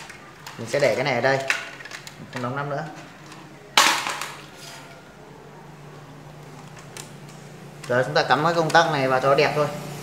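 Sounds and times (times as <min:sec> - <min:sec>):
plastic parts clattering: 0:00.0 - 0:05.0.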